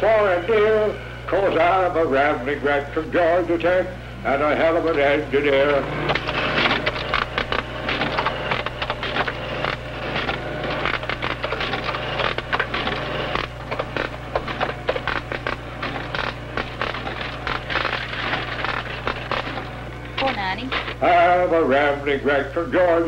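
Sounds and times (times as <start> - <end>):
steady low hum: 0.0 - 23.0
cash register clicks and clatter: 5.0 - 21.0.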